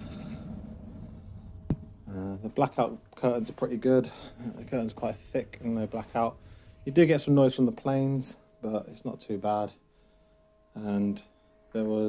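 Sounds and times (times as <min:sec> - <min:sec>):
low background rumble: 0:00.0 - 0:07.7
faint hum: 0:00.0 - 0:12.0.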